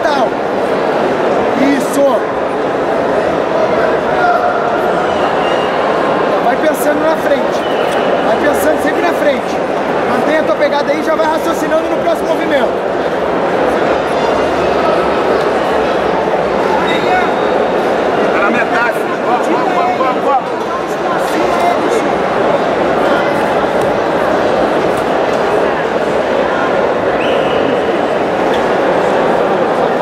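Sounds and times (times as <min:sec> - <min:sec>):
crowd shouting and talking: 0:00.0 - 0:30.0.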